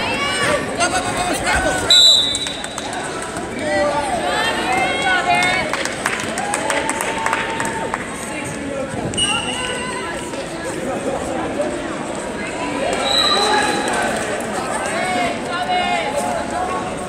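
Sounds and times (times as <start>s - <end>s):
referee's whistle blast: 1.9s - 2.7s.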